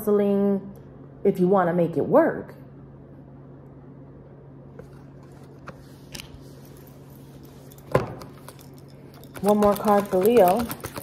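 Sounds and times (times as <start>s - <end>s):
cards tapping: 9.3s - 11.0s.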